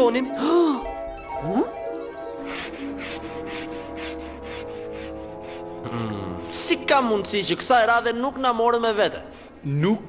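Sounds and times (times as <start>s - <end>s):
background music tones: 0.0s - 10.0s
scrubbing on wooden planks: 2.5s - 5.8s.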